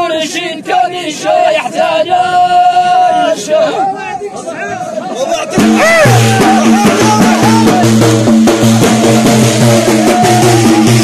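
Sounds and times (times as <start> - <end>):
chorus of men singing: 0.0 - 4.0
frame drums beaten: 5.5 - 11.0.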